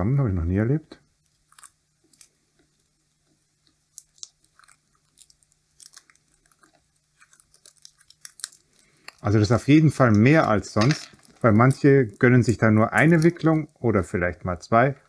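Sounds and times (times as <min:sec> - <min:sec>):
tape peeling crackles: 0:01.2 - 0:13.7.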